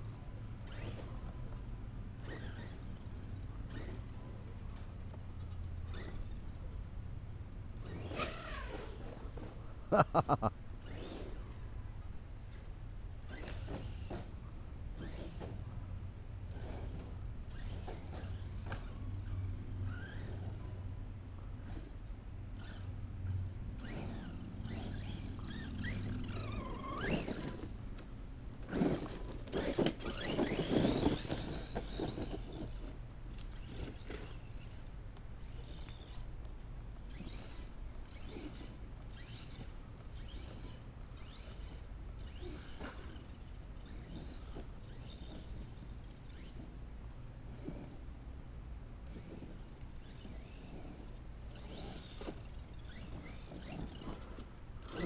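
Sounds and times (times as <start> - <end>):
electric motor whining: 22.6 - 27.7, 37.1 - 46.8, 49.1 - 55.0
tyres rattling over gravel: 23.8 - 34.8.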